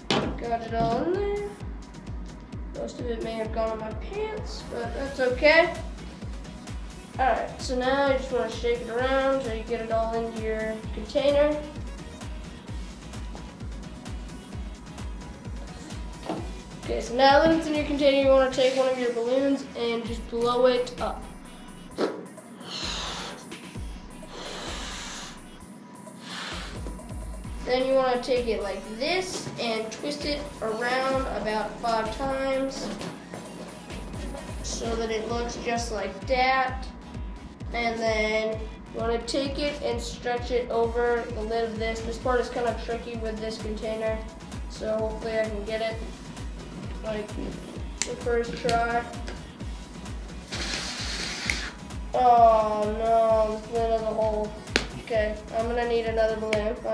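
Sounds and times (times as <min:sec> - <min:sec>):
background music with steady beat: 0:00.0 - 0:56.9
person blowing up balloon: 0:22.6 - 0:27.0, 0:50.4 - 0:52.0.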